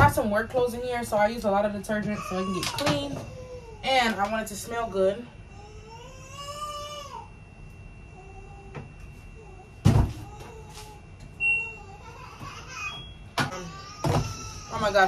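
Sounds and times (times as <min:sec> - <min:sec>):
short high beeps: 0:11.4 - 0:11.8.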